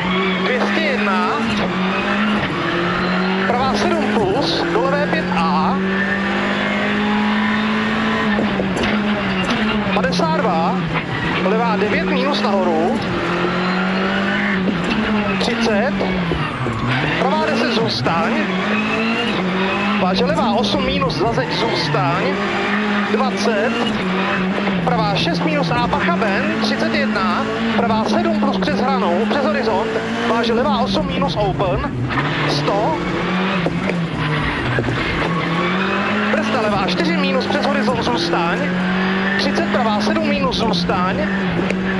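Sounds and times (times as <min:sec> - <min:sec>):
car engine at high revs: 0:00.0 - 0:41.9
road and tyre noise: 0:00.0 - 0:41.9.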